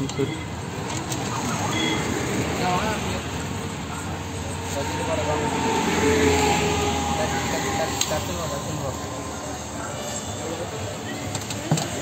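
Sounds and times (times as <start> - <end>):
faint voices: 0.0 - 12.0
vehicle passing: 2.1 - 10.6.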